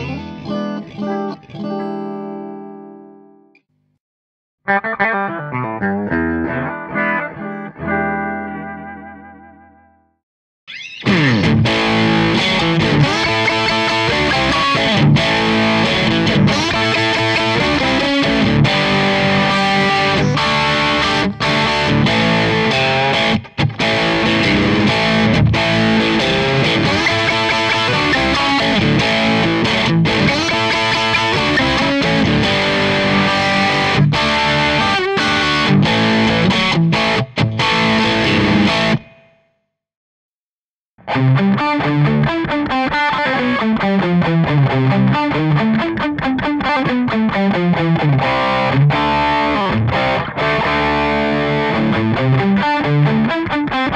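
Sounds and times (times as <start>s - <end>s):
distorted electric guitar: 0.0s - 3.3s, 4.7s - 10.0s, 10.7s - 39.4s, 41.0s - 53.9s.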